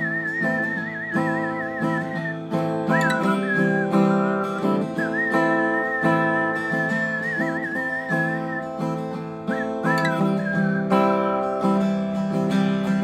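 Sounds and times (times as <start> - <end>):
person whistling a melody: 0.0 - 12.5
strummed acoustic guitar: 0.0 - 13.0.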